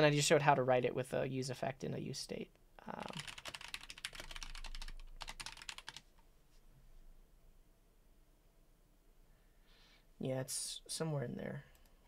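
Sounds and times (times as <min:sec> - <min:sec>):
typing on computer keyboard: 0:03.0 - 0:06.1.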